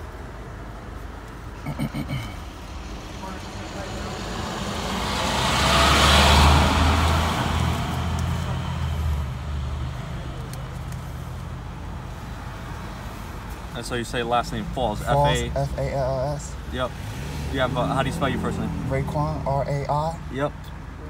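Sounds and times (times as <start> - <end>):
low engine hum: 0.0 - 21.0
road vehicle passing by: 1.6 - 21.0.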